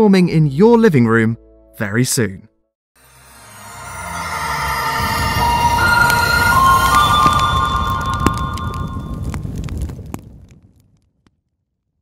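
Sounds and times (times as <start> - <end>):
held synth notes: 3.0 - 9.2
low fire-like rumble with crackles: 6.1 - 12.0.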